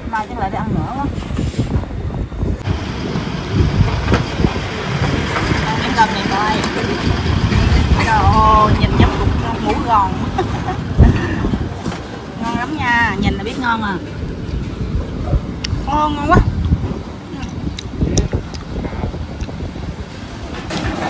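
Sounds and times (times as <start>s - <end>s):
loud low rumbling: 0.0s - 20.7s.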